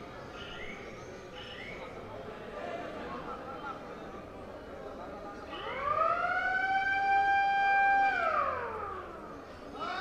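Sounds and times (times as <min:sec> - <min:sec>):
siren-like wail: 0:05.5 - 0:09.4.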